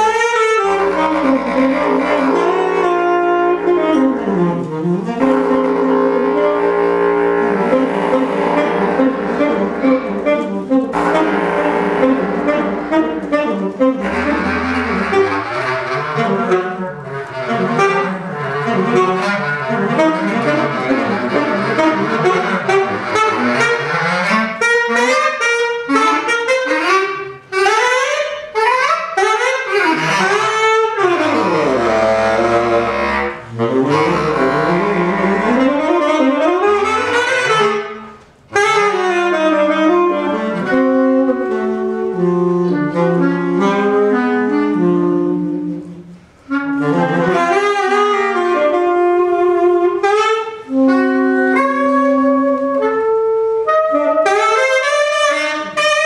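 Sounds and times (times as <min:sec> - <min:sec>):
bass clarinet: 0:00.0 - 0:56.0
saxophone: 0:00.0 - 0:56.0.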